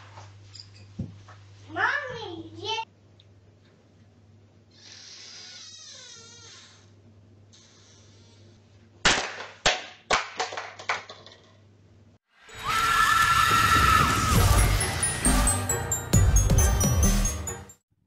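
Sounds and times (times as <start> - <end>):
loud intro music: 12.6 - 17.8.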